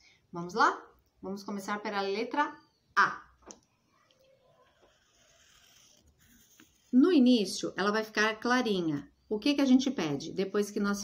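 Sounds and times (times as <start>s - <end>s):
pencil scratching on paper: 4.3s - 7.3s.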